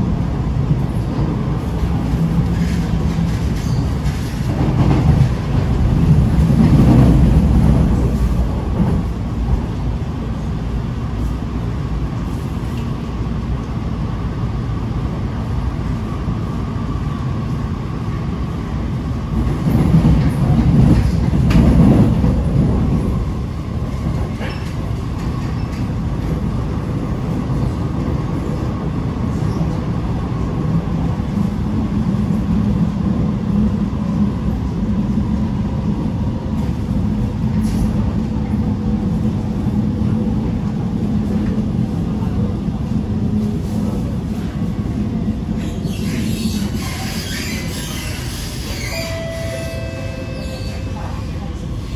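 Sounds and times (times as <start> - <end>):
train wheels rumbling on rail: 0.0 - 51.9.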